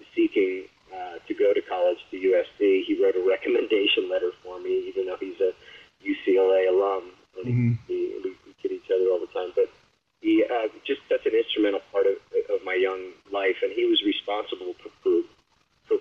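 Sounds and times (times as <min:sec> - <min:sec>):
man talking: 0:00.0 - 0:15.3.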